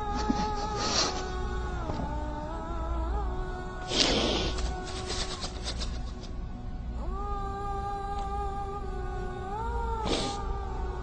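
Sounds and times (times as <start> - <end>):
man weeping: 0.0 - 1.4.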